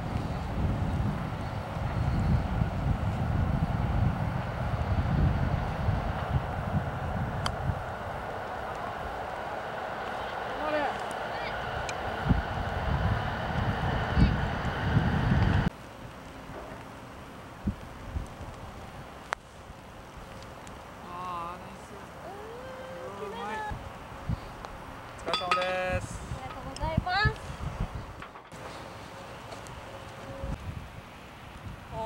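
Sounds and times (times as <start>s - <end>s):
wind buffeting microphone: 0.0s - 15.7s, 17.5s - 20.8s, 22.9s - 28.6s, 29.7s - 32.0s.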